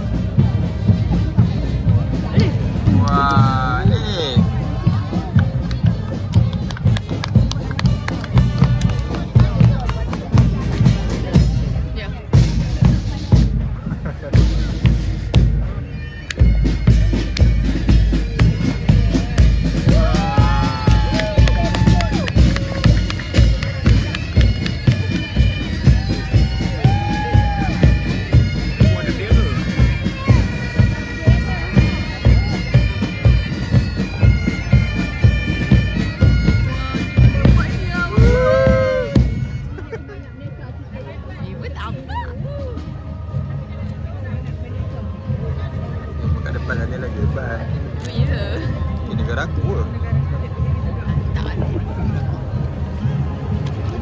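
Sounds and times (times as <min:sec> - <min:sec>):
bass drums beating: 0:00.0 - 0:39.7
bagpipes playing a march: 0:14.3 - 0:41.6.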